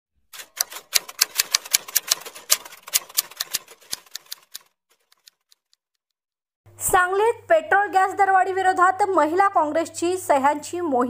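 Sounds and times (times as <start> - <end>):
typewriter key clicks: 0.4 - 5.3.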